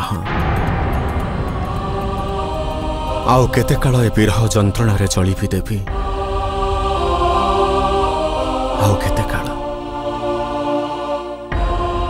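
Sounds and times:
held drone tones: 0.0s - 12.0s
low full swell: 0.2s - 12.0s.

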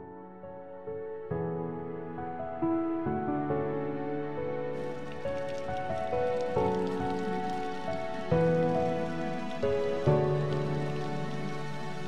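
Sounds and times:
slow melodic background music: 0.0s - 12.0s
garden hose spraying water: 4.8s - 12.0s.

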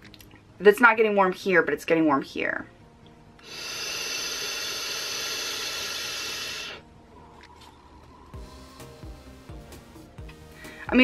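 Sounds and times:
vape draw hiss: 3.4s - 6.8s.

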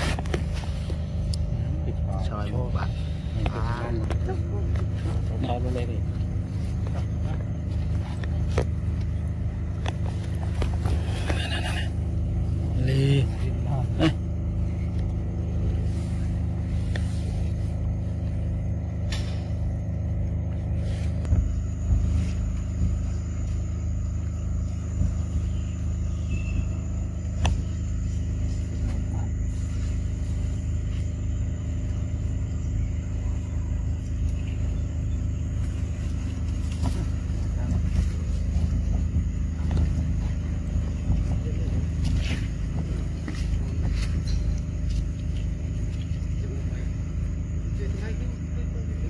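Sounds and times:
low mechanical drone: 0.0s - 49.0s.

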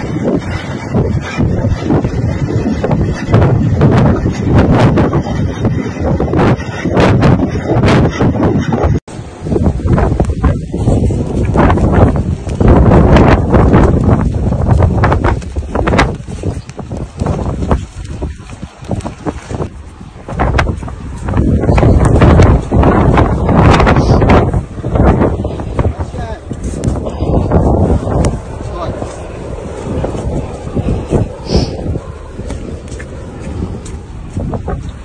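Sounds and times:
strong wind buffeting microphone: 0.0s - 35.0s.

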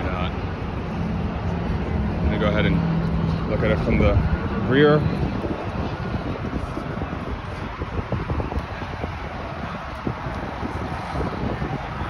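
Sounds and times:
people gathered nearby: 0.0s - 12.0s
wind blowing on microphone: 0.0s - 12.0s.

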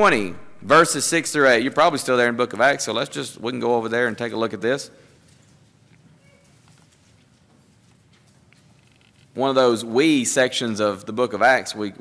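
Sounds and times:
soft ticks and rustles: 5.1s - 9.4s.

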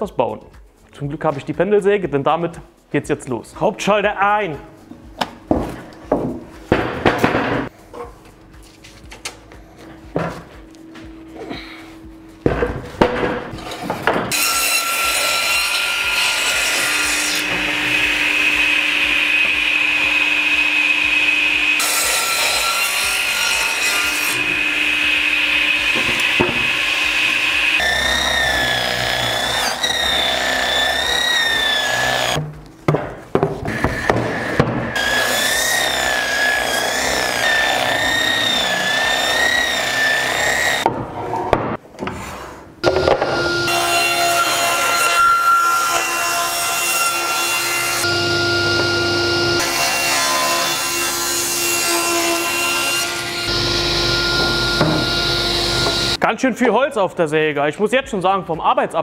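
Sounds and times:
crosscut saw cutting planks: 13.6s - 32.4s, 33.6s - 41.0s, 42.8s - 56.2s.

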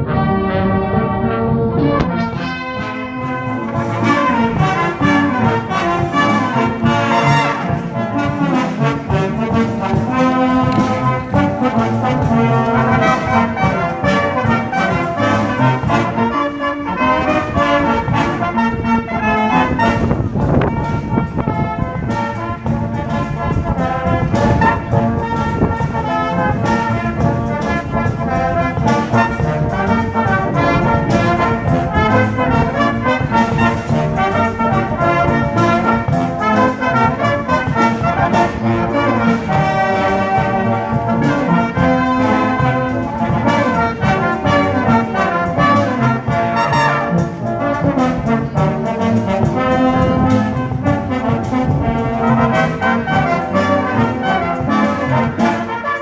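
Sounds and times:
brass band playing: 0.0s - 56.0s.

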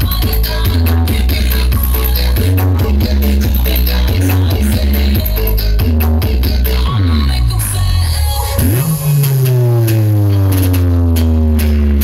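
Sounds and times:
electronic dance music: 0.0s - 12.0s
deep bass tone swooping: 8.6s - 12.0s.

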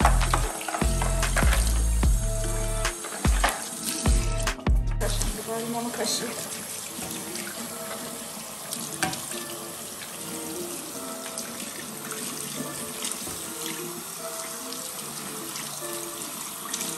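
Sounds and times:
tap running into sink: 0.0s - 2.1s, 2.9s - 4.2s, 8.9s - 9.5s.

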